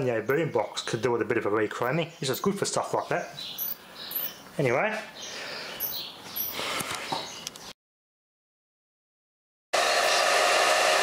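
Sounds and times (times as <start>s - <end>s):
handheld camera rustling: 5.8s - 7.7s.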